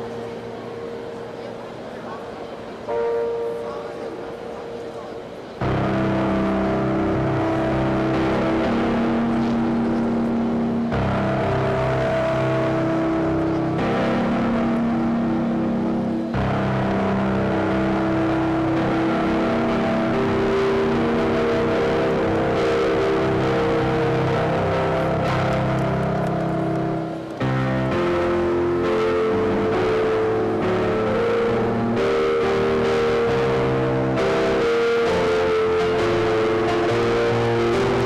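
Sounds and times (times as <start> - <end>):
electronic keyboard chords: 0.0 - 38.0.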